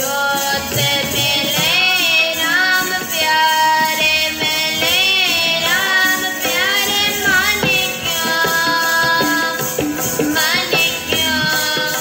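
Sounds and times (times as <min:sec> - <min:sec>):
instrumental accompaniment: 0:00.0 - 0:12.0
young voice singing: 0:00.0 - 0:12.0
drum strokes: 0:00.4 - 0:12.0.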